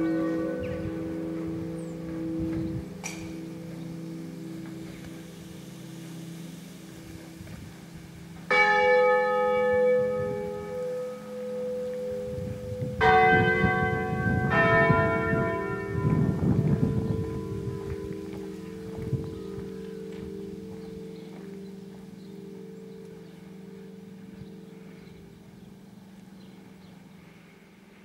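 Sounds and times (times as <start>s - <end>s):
church bells ringing: 0.0s - 28.0s.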